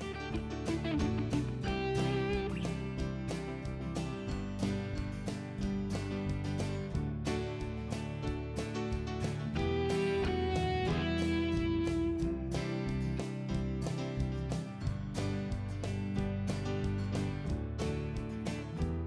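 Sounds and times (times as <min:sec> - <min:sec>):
strummed guitar music: 0:00.0 - 0:19.0.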